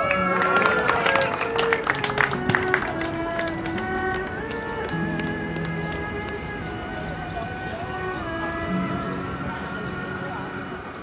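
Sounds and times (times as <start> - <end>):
bowed fiddle slow melody: 0.0 - 11.0.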